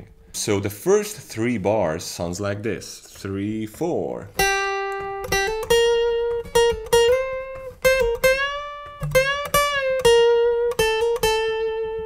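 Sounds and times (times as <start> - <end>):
acoustic guitar lead line: 0.0 - 12.0.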